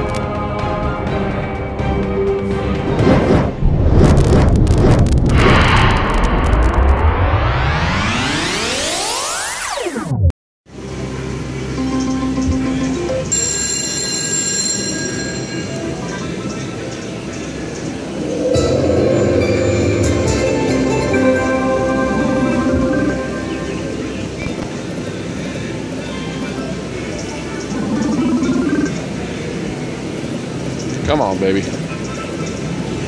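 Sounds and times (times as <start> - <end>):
slot machine electronic music: 11.8 - 16.4, 18.5 - 24.6
music sting with whooshing sweeps: 17.9 - 25.8.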